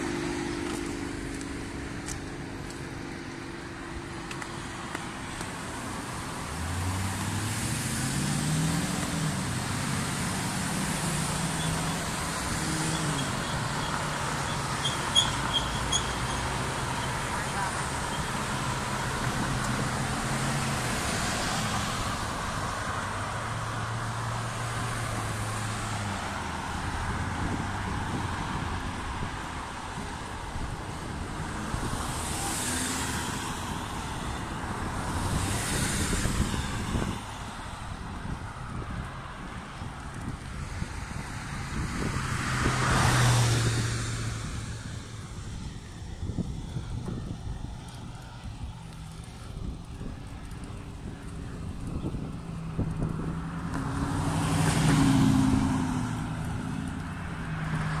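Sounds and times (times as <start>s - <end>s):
road traffic noise: 0.0s - 58.0s
vehicles passing close by: 0.0s - 58.0s.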